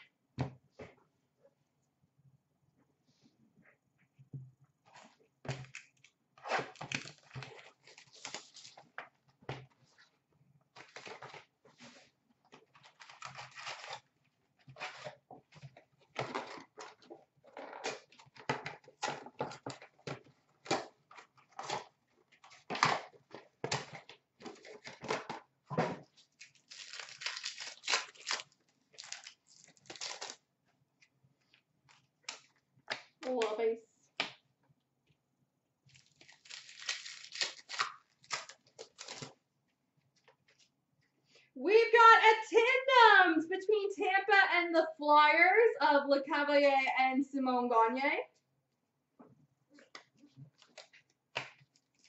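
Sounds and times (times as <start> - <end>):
card packs being torn open: 5.6 - 8.9, 12.8 - 14.1, 26.2 - 30.4, 35.9 - 39.4, 50.6 - 52.0
wrappers crinkling: 6.8 - 9.0, 26.2 - 30.4, 35.9 - 39.4, 51.6 - 52.0.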